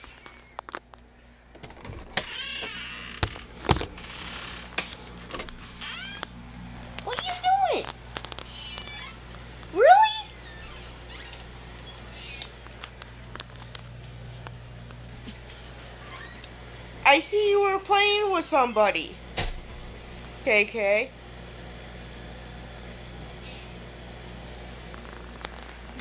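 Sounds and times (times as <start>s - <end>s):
cat meowing: 8.4s - 9.2s, 12.0s - 12.6s.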